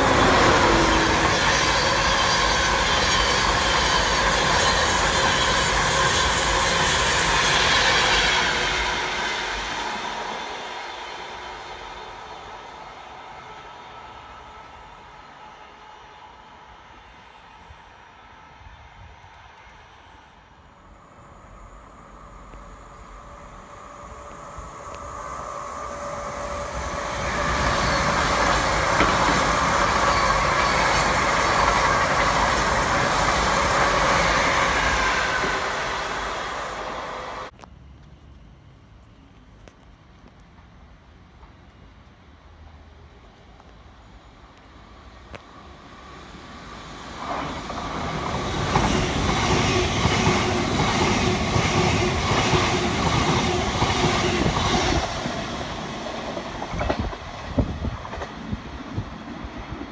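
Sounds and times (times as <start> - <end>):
high-speed train rumbling in: 0.0 - 38.8, 40.5 - 59.9
train passing at speed: 0.0 - 59.9.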